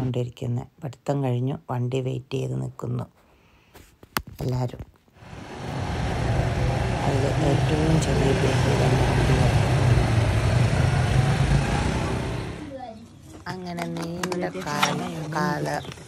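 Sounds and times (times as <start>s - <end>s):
quad bike engine running: 5.2s - 12.8s
voices: 6.4s - 16.0s.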